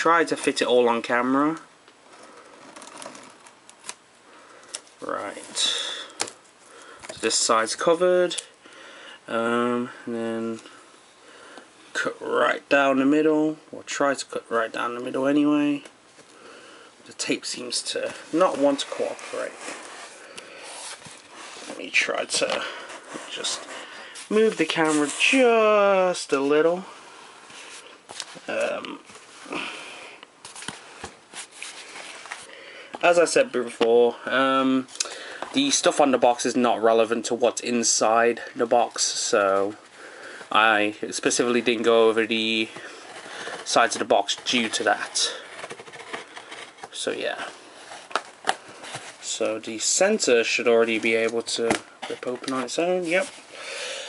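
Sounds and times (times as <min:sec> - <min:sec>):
cardboard box rustling scrapes: 0:18.2 - 0:22.0, 0:22.8 - 0:25.5, 0:41.6 - 0:49.3.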